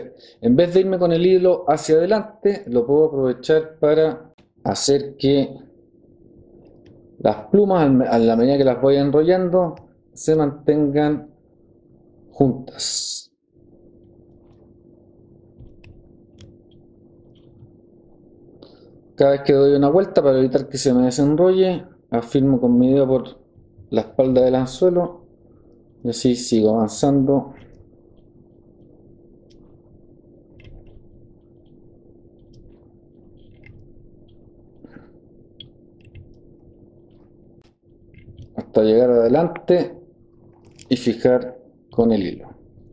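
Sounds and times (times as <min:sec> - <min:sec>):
steady low hum: 0:00.0 - 0:42.9
small clicks and rustles: 0:27.6 - 0:38.6
small sharp clicks: 0:30.5 - 0:35.0.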